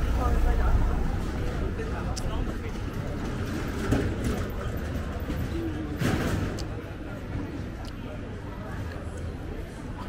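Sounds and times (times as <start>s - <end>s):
passersby talking: 0.0s - 10.0s.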